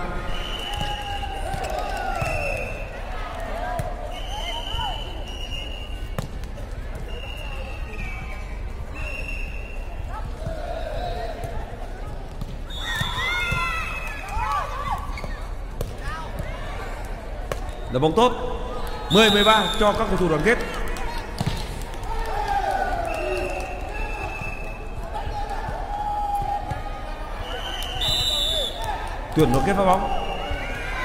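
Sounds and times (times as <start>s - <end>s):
players calling and shouting: 6.9s - 31.0s
ball being hit and bouncing: 21.3s - 21.8s.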